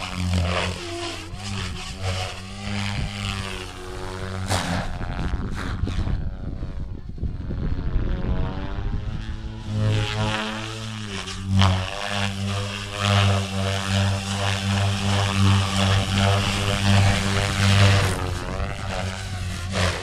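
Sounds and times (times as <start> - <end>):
rc helicopter rotor and motor hum: 0.0 - 20.0
steady pulsing: 0.0 - 20.0
sharp whoosh: 17.2 - 18.9.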